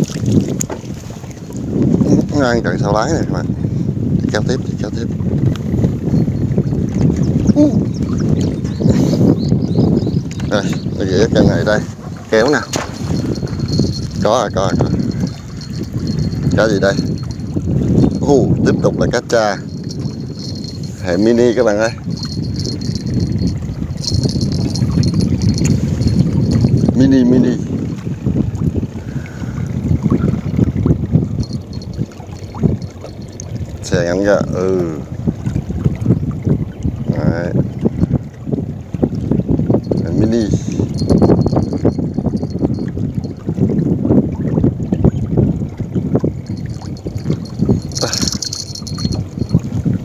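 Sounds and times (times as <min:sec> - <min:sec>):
water lapping and splashing: 0:00.0 - 0:50.0
wind buffeting microphone: 0:00.0 - 0:50.0.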